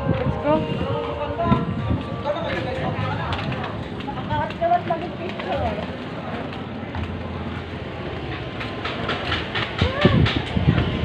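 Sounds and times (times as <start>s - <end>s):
market rumble: 0.0s - 11.0s.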